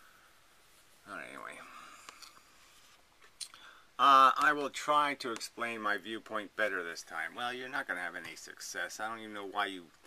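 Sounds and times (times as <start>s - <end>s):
soft breathy noise: 0.0s - 4.0s.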